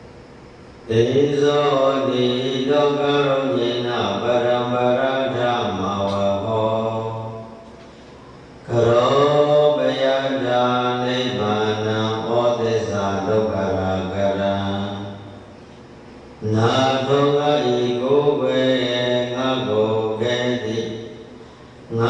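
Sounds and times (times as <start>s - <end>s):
man chanting into microphone: 0.9s - 7.7s, 8.6s - 15.5s, 16.4s - 21.3s.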